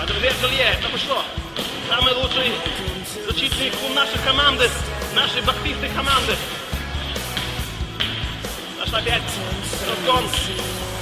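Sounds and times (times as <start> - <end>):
background music with bass: 0.0 - 11.0
man singing or chanting: 2.5 - 6.4.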